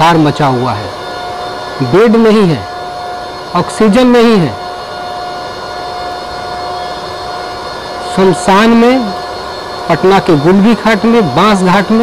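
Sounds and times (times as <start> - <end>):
constant mid-pitched hum: 0.0 - 12.0.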